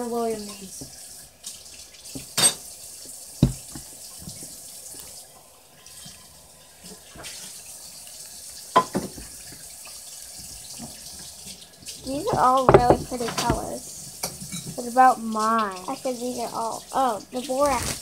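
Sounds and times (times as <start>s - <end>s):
slime squelching: 15.0s - 18.0s.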